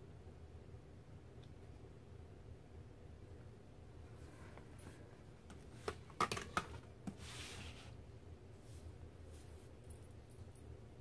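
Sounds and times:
sketchbook sliding on table: 7.0s - 8.0s.

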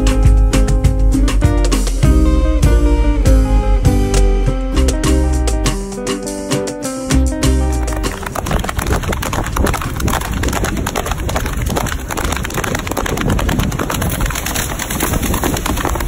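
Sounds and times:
breaking surf: 7.8s - 16.0s
wind buffeting microphone: 7.8s - 16.0s.

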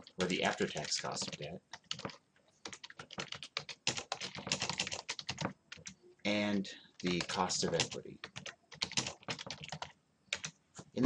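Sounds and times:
typing on keyboard: 0.0s - 6.0s, 7.0s - 10.6s.

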